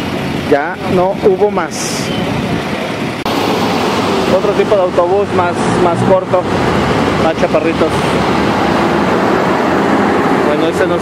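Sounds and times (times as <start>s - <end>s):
street traffic noise: 0.0s - 11.0s
bus driving past: 1.8s - 11.0s.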